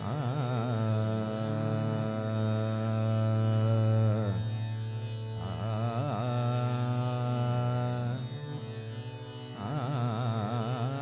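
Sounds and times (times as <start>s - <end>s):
man singing: 0.0s - 4.4s, 5.4s - 8.3s, 9.6s - 11.0s
harmonium holding notes: 0.0s - 11.0s.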